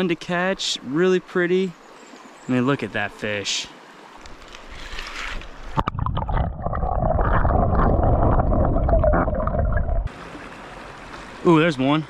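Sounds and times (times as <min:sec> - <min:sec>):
muffled underwater water gurgling: 0:05.8 - 0:10.1.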